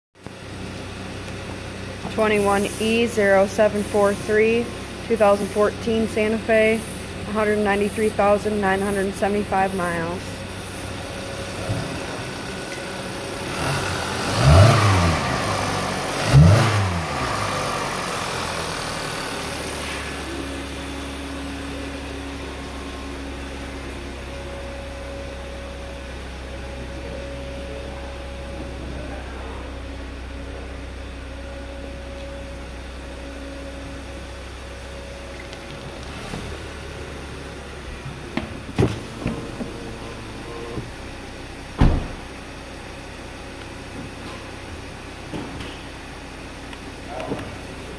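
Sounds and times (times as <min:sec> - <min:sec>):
car engine idling: 0:00.2 - 0:47.9
car engine revving: 0:00.4 - 0:41.2.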